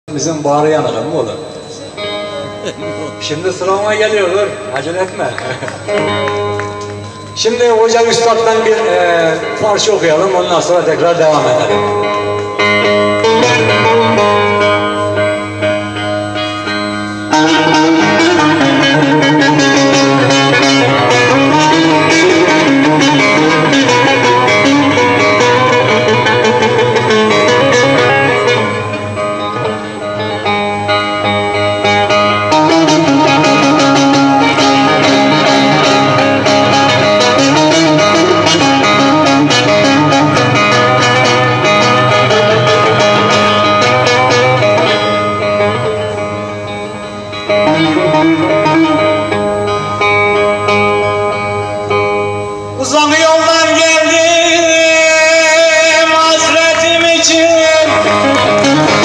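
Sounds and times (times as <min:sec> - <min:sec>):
plucked long-necked lute: 0:08.7 - 0:52.8, 0:53.6 - 0:59.0.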